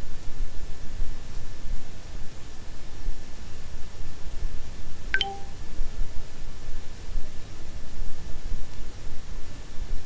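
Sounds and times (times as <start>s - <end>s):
low background rumble and hiss: 0.0s - 10.0s
brief ringing tone: 5.2s - 5.5s
short click: 5.2s - 5.5s.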